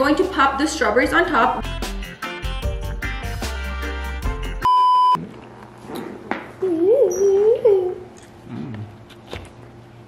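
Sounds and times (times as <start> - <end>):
background music: 0.0 - 4.7
censor bleep: 4.6 - 5.2.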